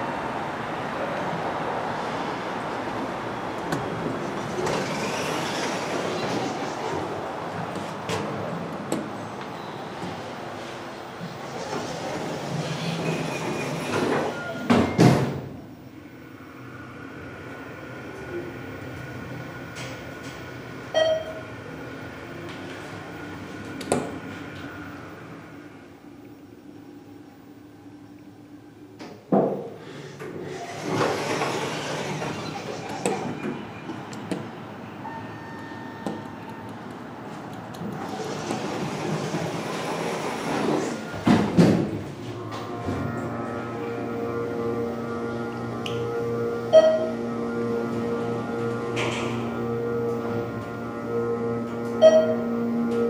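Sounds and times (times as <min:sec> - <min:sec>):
elevator humming: 0:00.0 - 0:53.0
elevator chime: 0:18.1 - 0:21.5, 0:34.8 - 0:36.4, 0:42.4 - 0:53.0.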